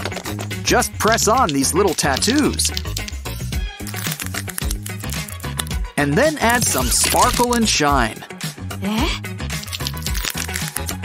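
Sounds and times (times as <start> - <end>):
percussion beat: 0.0 - 8.2
bass line: 4.6 - 8.2.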